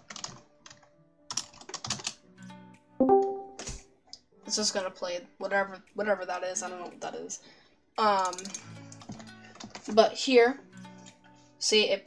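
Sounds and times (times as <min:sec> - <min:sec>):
computer keyboard typing: 0:00.0 - 0:02.2.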